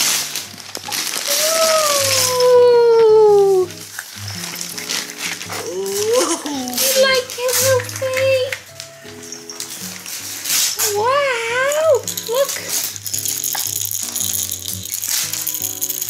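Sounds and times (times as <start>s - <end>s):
toy rattle shaken: 0.0s - 2.6s, 3.4s - 8.6s, 9.2s - 16.0s
gentle background melody: 0.0s - 16.0s.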